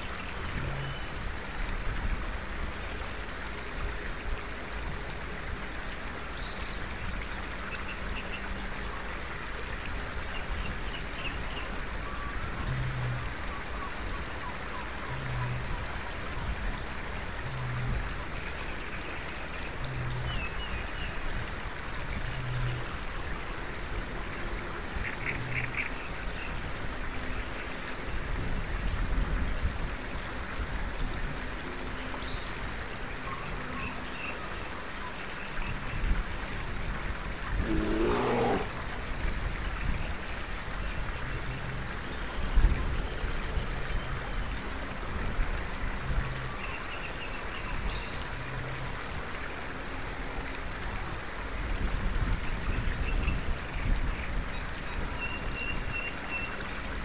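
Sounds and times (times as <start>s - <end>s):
forest ambient noise: 0.0s - 57.0s
birds chirping: 37.5s - 39.0s
low short animal call: 37.6s - 38.9s.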